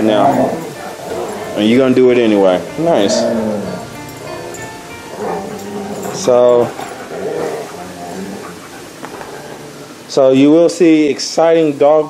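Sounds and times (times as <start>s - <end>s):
dog grumbling: 0.0s - 10.1s
dogs play-fighting: 0.0s - 10.2s.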